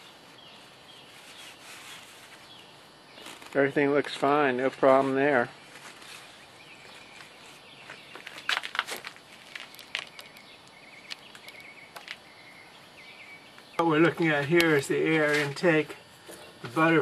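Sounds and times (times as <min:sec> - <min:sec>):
light clicks and knocks of parts: 0:08.1 - 0:12.2.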